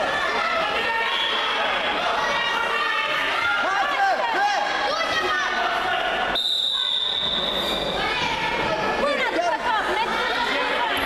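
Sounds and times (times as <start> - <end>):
crowd chatter: 0.0 - 11.0
referee's whistle blast: 6.3 - 7.9.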